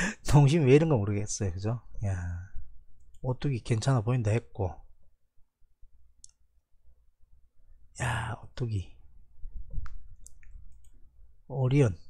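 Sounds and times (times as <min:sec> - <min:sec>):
computer mouse click: 0:09.7 - 0:11.0.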